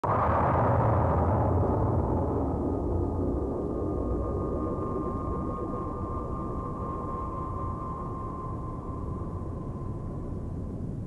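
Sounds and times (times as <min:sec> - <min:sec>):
low rumble: 0:00.0 - 0:11.0
high ringing tone: 0:04.7 - 0:10.6.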